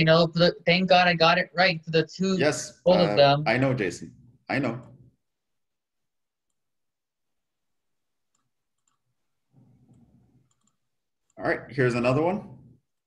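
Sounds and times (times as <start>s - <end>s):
faint clicks: 9.9s - 11.4s.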